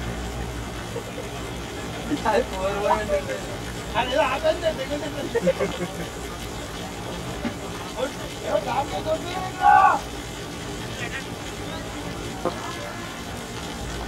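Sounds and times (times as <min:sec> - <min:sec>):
players shouting: 0:09.4 - 0:10.1.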